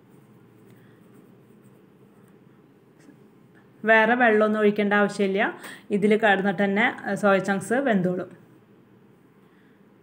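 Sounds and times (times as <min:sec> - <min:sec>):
woman speaking: 0:03.8 - 0:08.5.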